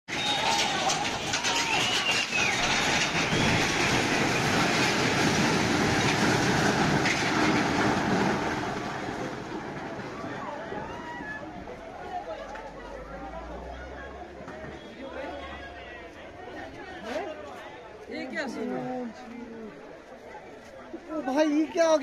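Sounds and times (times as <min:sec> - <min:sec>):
rumble of falling masonry: 0:00.1 - 0:13.3
faint voices: 0:08.8 - 0:22.0.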